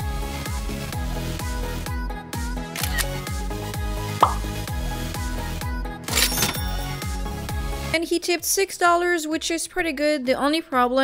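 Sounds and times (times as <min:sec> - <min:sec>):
sharp click: 0:02.8 - 0:03.1
electronic music with kick drum: 0:04.2 - 0:04.6.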